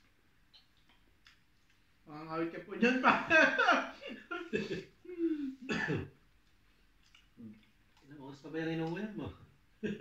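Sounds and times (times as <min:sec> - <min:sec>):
man clearing throat: 0:05.6 - 0:06.2.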